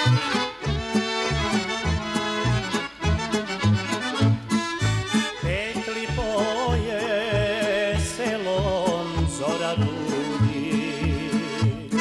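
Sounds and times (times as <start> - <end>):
accordion-led folk ensemble: 0.0 - 12.0
steady bass beat: 0.0 - 12.0.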